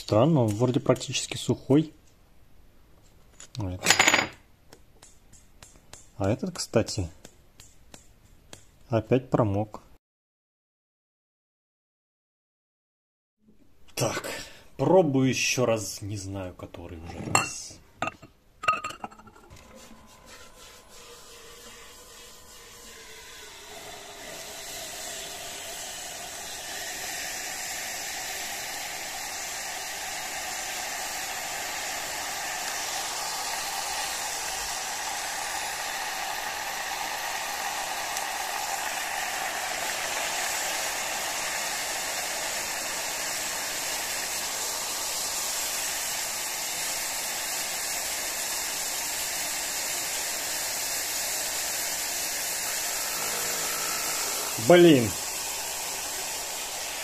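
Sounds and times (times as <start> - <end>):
boiling hiss: 14.0 - 57.0
liquid nitrogen pouring: 20.9 - 57.0.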